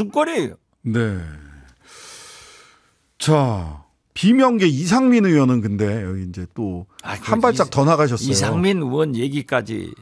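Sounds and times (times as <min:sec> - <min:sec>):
close in-breath: 0:01.8 - 0:03.0
man saying yes: 0:07.0 - 0:08.9.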